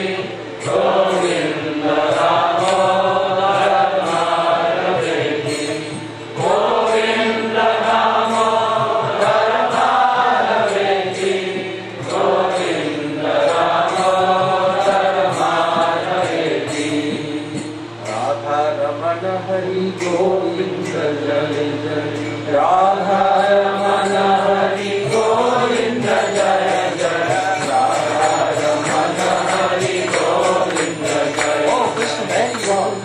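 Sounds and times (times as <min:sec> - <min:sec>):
faint regular ticking beat: 0:00.0 - 0:33.0
person chanting a slow melody: 0:00.0 - 0:33.0.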